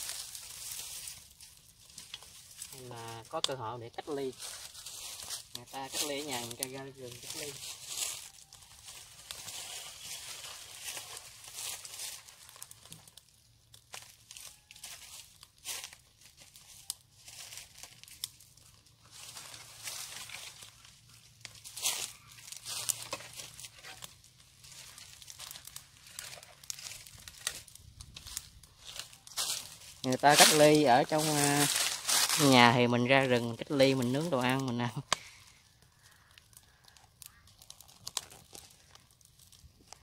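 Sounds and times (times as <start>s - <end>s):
dry branches rustling: 0.0s - 40.0s
twig fire crackling: 0.0s - 40.0s
sharp wood snaps: 21.4s - 29.8s, 36.0s - 40.0s.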